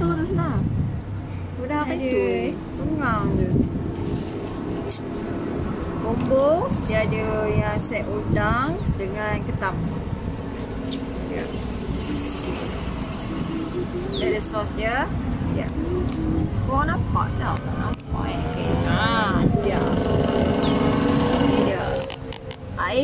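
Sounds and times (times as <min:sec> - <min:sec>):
people talking: 0:00.0 - 0:00.7, 0:01.6 - 0:03.7, 0:06.0 - 0:09.8, 0:11.2 - 0:11.6, 0:13.7 - 0:20.1, 0:21.4 - 0:22.2, 0:22.8 - 0:23.0.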